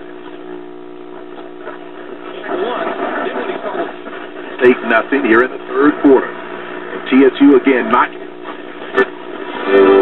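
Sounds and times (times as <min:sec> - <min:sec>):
radio hum with static: 0:00.0 - 0:10.0
sports announcer on radio: 0:04.6 - 0:06.4, 0:07.0 - 0:08.3.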